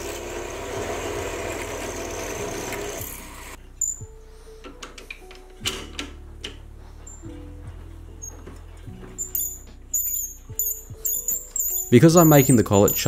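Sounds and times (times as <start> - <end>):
lathe drilling into metal: 0.0 - 3.6.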